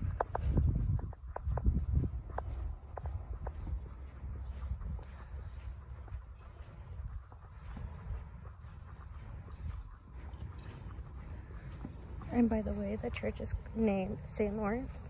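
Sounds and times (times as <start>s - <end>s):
footsteps on pavement: 0.0s - 15.0s
wind rumbling on microphone: 0.0s - 15.0s.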